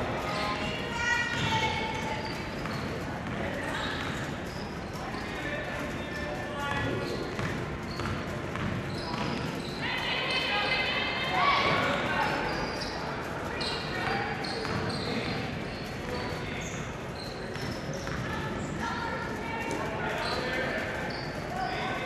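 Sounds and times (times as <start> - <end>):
crowd voices and shouts: 0.0 - 22.0.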